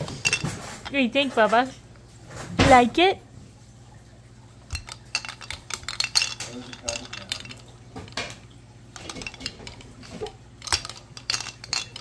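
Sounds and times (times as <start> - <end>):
plastic blocks clattering: 4.7 - 8.4, 9.0 - 12.0.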